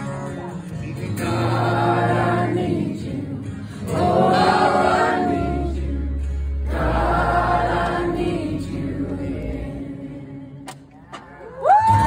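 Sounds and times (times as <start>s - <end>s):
voices singing together: 0.8s - 11.0s.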